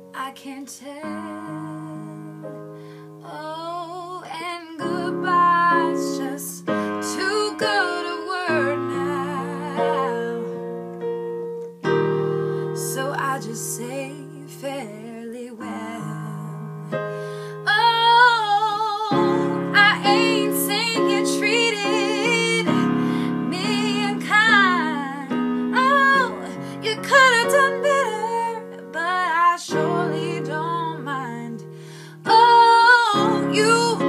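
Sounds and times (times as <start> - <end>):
woman singing with vibrato: 0.1 - 2.4, 3.2 - 10.7, 12.7 - 34.0
electric keyboard piano chords: 4.8 - 14.4, 15.8 - 34.0.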